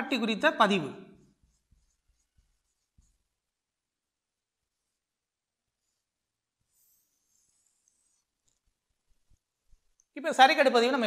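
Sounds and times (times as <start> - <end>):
marker writing on a whiteboard: 1.2 - 3.5, 6.7 - 10.0.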